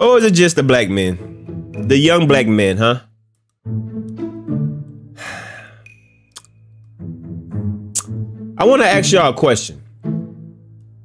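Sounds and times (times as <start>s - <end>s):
breathy mouth exhale: 5.2s - 6.0s.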